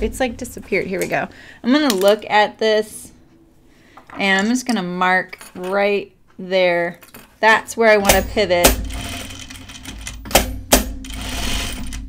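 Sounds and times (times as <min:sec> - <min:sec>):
sewing machine clacks: 0:08.0 - 0:12.0
sewing machine stitching: 0:08.1 - 0:12.0.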